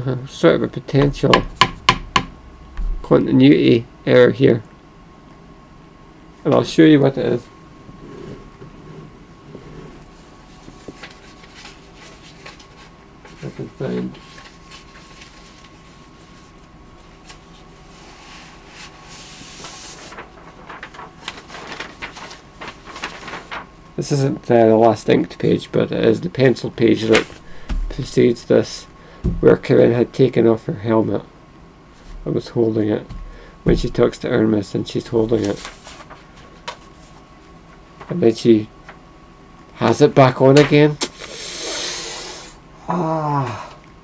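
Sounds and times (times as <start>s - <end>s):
paper rustling and shuffling: 10.0s - 24.3s, 26.8s - 28.7s, 31.9s - 39.0s, 39.8s - 41.0s
person exhaling breathily: 41.2s - 43.8s.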